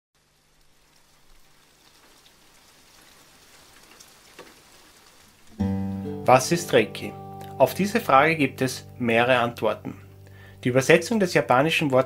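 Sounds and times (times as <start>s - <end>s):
faint steady hiss: 0.2s - 12.0s
held guitar chord: 5.6s - 12.0s.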